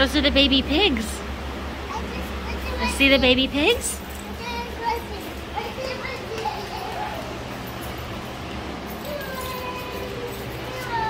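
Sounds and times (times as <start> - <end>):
children and adults talking: 0.0 - 11.0
steady low hum: 0.0 - 11.0.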